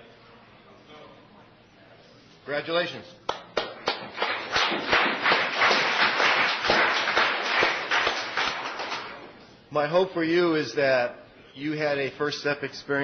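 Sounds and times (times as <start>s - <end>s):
people applauding: 3.3s - 9.3s.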